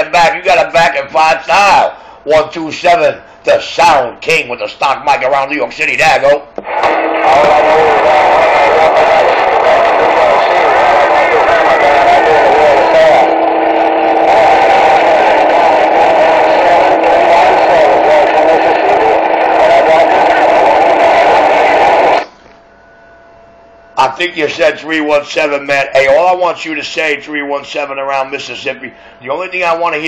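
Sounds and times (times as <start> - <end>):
distorted voice over radio speaker: 6.7 - 22.3.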